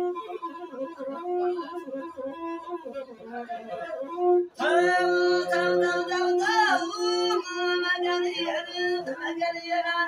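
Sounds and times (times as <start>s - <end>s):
bowed one-string fiddle: 0.0s - 10.0s
person singing ornamented line: 4.6s - 10.0s.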